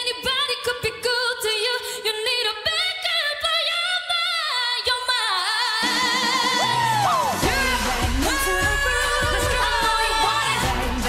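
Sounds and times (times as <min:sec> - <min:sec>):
woman singing pop song: 0:00.0 - 0:11.0
backing track: 0:05.8 - 0:11.0
bass line: 0:06.4 - 0:11.0.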